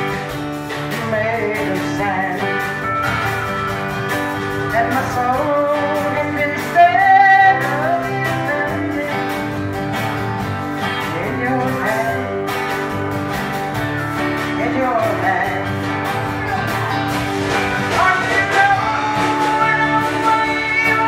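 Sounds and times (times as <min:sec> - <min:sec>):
band playing: 0:00.0 - 0:21.0
strummed acoustic guitar: 0:00.0 - 0:21.0
woman singing: 0:00.9 - 0:02.5, 0:04.6 - 0:09.3, 0:11.1 - 0:12.5, 0:14.6 - 0:15.8, 0:17.6 - 0:21.0.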